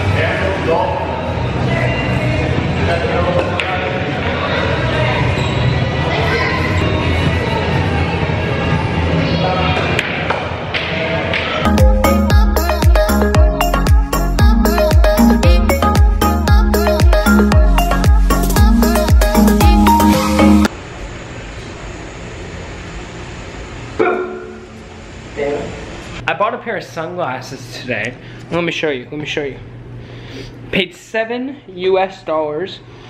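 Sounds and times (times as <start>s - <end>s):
murmur of voices: 0.0s - 11.7s
music playing: 11.7s - 20.7s.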